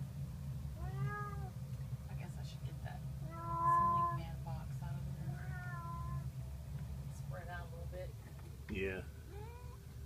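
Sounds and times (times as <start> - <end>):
steady low hum: 0.0 - 10.0
cat meowing: 0.8 - 1.6, 3.3 - 4.2, 5.3 - 6.2, 9.3 - 9.8.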